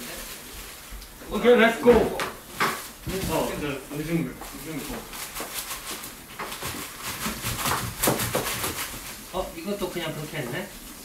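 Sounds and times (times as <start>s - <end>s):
plastic packaging crinkling: 2.8s - 10.8s
knife cutting on plastic board: 6.4s - 9.0s.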